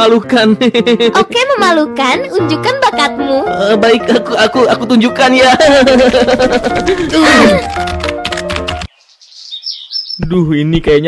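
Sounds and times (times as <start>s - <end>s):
music with light percussive beat: 4.7s - 8.9s
high bird chirps: 8.9s - 10.3s.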